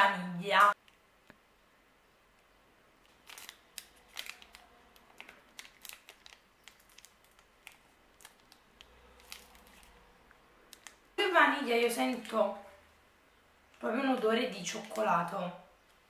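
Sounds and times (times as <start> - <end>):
plastic wrapper crinkling: 3.0 - 12.8, 14.6 - 15.3.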